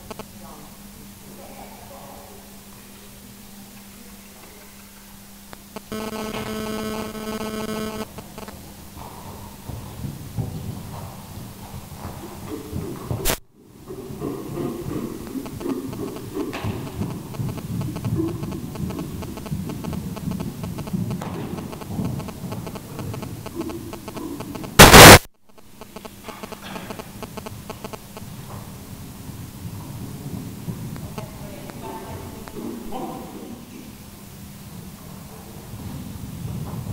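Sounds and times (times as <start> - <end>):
loud blast of noise: 24.8 - 25.3
sharp crack: 24.8 - 25.3.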